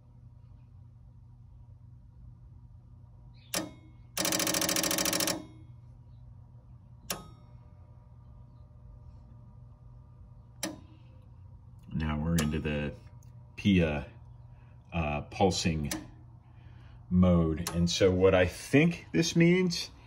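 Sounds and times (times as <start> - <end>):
steady electrical hum: 0.0 - 20.0.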